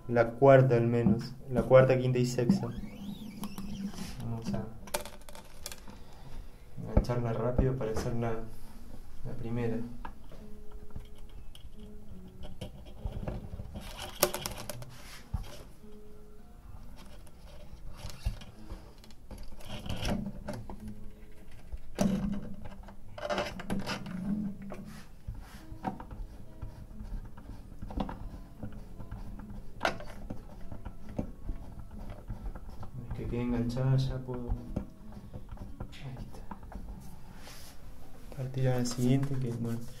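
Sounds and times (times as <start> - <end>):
rubbing on guitar: 2.4 - 4.5.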